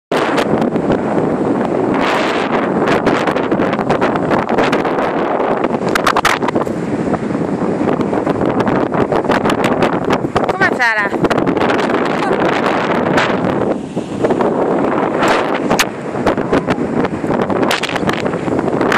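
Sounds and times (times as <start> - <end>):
wind buffeting microphone: 0.1 - 18.9
crackles and knocks: 5.7 - 6.9, 17.1 - 18.9.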